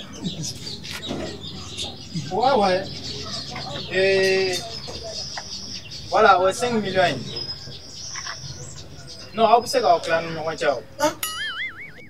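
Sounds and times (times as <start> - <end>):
animal calls: 0.0 - 10.2.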